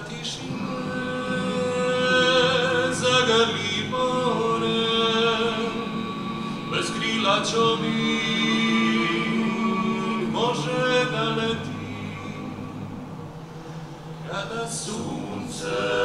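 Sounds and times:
male a cappella group singing: 0.0s - 16.0s.

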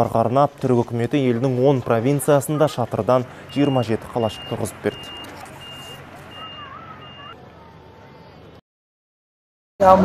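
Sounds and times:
low engine hum: 0.6s - 8.6s
reversing alarm beeping: 3.4s - 7.4s.

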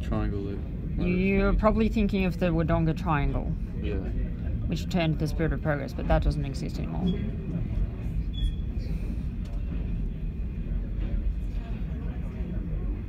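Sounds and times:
train carriage rumbling on track: 0.0s - 13.0s
faint squeak: 8.2s - 8.9s.

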